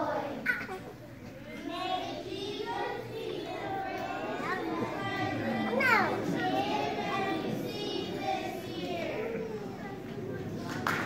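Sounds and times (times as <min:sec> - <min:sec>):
children chattering and calling out: 0:00.0 - 0:10.9.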